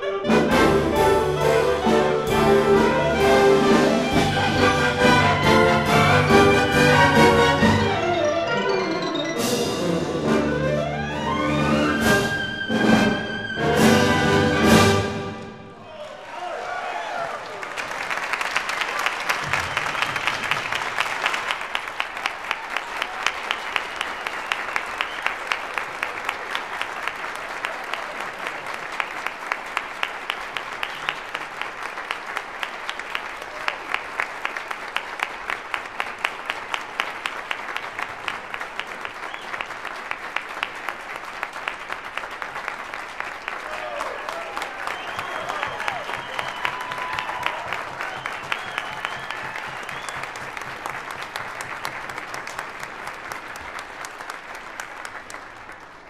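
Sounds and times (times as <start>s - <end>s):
people cheering: 15.8s - 55.0s
audience applauding: 15.8s - 56.0s.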